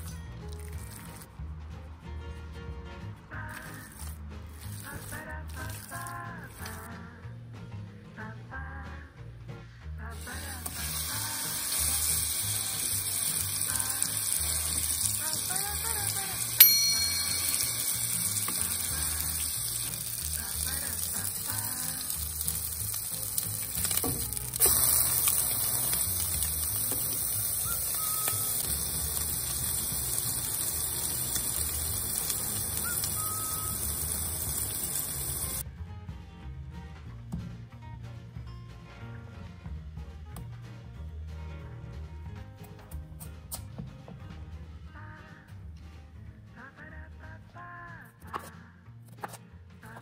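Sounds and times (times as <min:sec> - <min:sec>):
meat patty sizzling in a pan: 0:10.2 - 0:35.6
sharp ringing click: 0:16.6 - 0:18.2.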